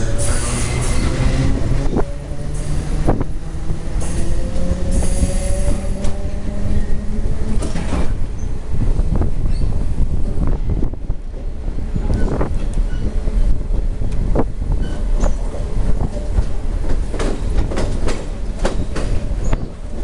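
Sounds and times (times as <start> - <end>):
electric train rumbling and whining: 0.0 - 20.0
wheels clicking over rail joints: 14.0 - 20.0.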